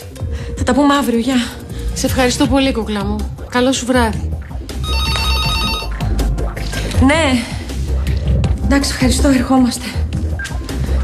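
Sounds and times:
soft background music: 0:00.0 - 0:11.0
phone ringing: 0:04.8 - 0:06.1.

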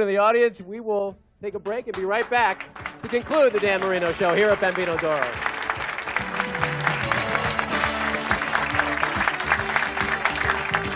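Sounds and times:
background music: 0:00.0 - 0:10.9
audience clapping: 0:01.6 - 0:10.9.

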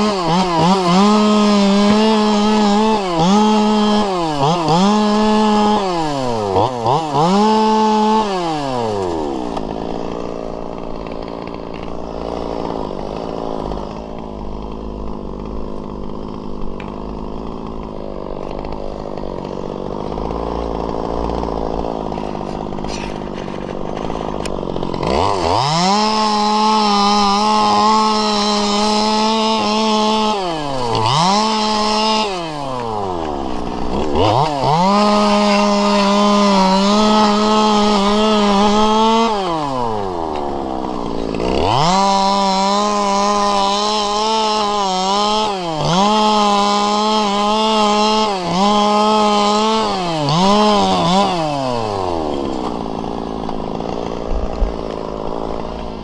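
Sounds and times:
chainsaw revving and idling: 0:00.0 - 0:56.0.

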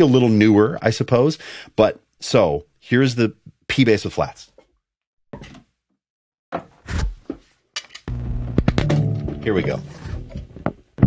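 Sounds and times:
sustained low bass note: 0:08.1 - 0:10.6.

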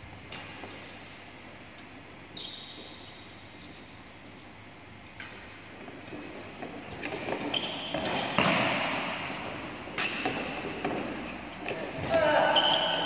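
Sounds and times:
shoes squeaking on court floor: 0:00.2 - 0:04.4, 0:05.2 - 0:13.0
racket hitting shuttlecock: 0:07.0 - 0:09.3.

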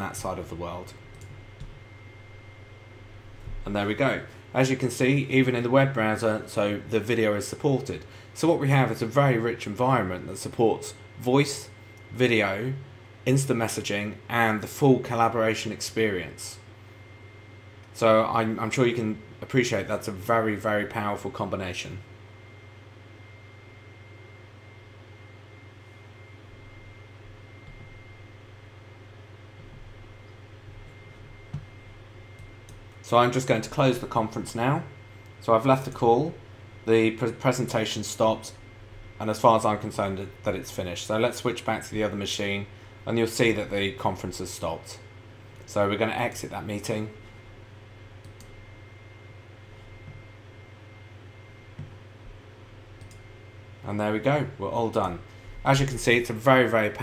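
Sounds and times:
faint high whine: 0:00.0 - 0:57.0
low electrical hum: 0:00.0 - 0:57.0
computer mouse clicks: 0:53.0 - 0:53.2.

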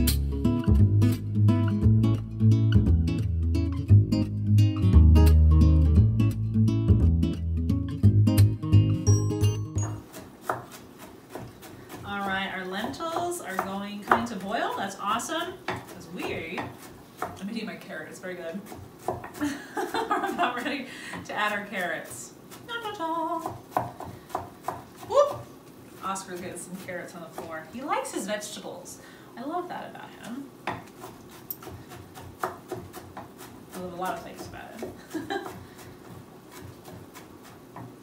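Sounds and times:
knife chopping on wooden board: 0:09.8 - 0:17.5, 0:18.6 - 0:19.4, 0:23.4 - 0:25.5, 0:30.6 - 0:38.0.

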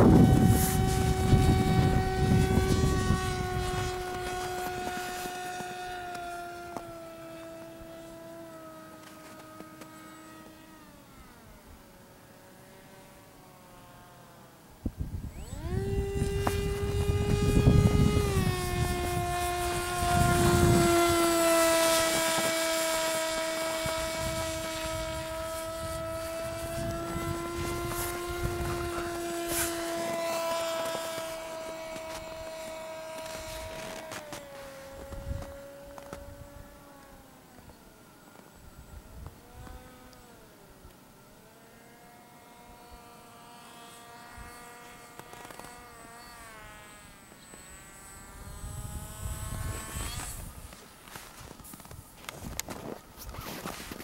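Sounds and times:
wind rumble on microphone: 0:00.0 - 0:06.1, 0:14.8 - 0:36.8, 0:48.3 - 0:54.0
model plane motor whining: 0:00.0 - 0:54.0.

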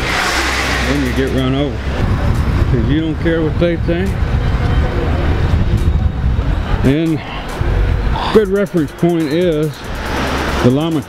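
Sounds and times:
loud low street rumble: 0:00.0 - 0:11.0
faint voices: 0:00.8 - 0:10.0.

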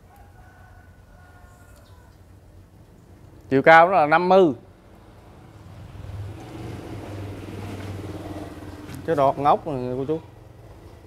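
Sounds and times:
vehicle engine droning: 0:04.6 - 0:11.0.

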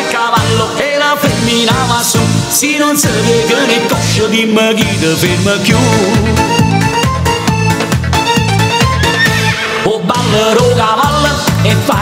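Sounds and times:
upbeat dance song: 0:00.0 - 0:12.0
horse whinny sound effect: 0:08.9 - 0:09.9.

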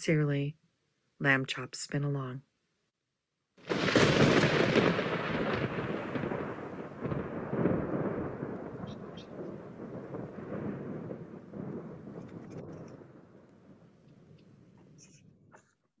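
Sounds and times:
thunder-like rumble: 0:03.7 - 0:14.7.

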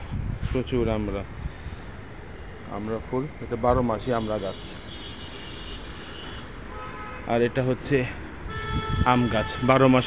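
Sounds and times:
distant city traffic hum: 0:00.0 - 0:10.0.

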